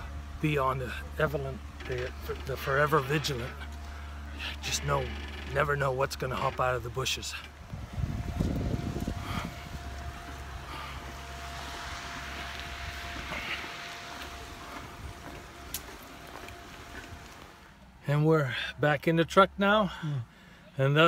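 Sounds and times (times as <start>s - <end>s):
wind buffeting microphone: 7.5s - 10.8s.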